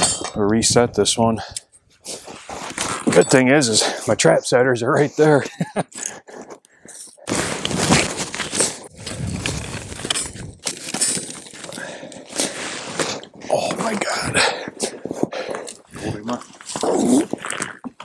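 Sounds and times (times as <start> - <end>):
sticks crunching and cracking: 7.5 - 12.4.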